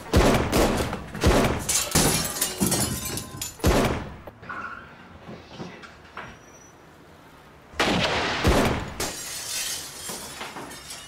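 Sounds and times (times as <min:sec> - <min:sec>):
gunfire: 0:00.1 - 0:01.7, 0:07.8 - 0:09.0
glass shattering: 0:01.5 - 0:03.8, 0:09.0 - 0:11.0.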